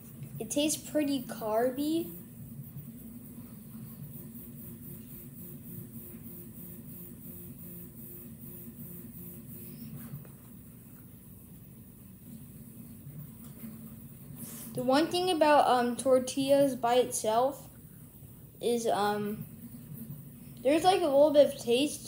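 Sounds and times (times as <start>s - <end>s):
low background hum: 0.0s - 22.0s
faint pulsing tone: 0.1s - 10.2s.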